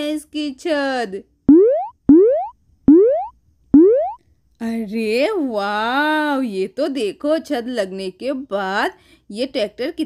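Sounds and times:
cartoon boing tones: 0:01.5 - 0:04.2.

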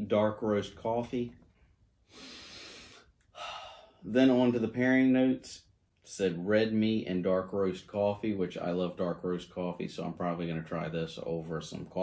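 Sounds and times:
man breathing: 0:01.5 - 0:04.1.

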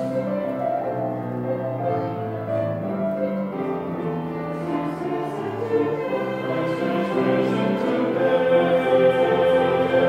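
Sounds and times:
mixed choir singing in harmony: 0:03.5 - 0:10.0.

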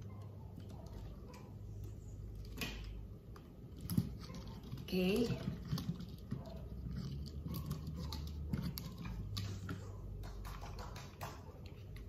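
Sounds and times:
clicks and taps of accessories: 0:00.0 - 0:12.0.

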